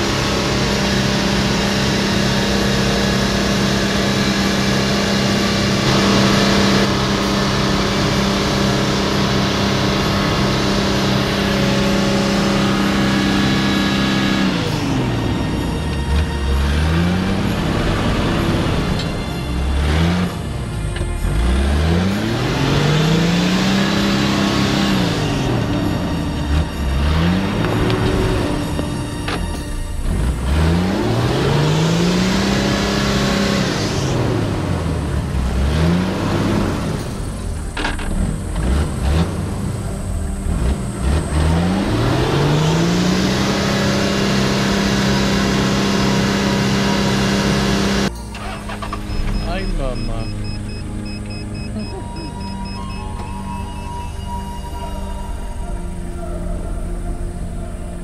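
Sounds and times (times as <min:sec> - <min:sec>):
vehicle engine revving: 0:00.0 - 0:58.0.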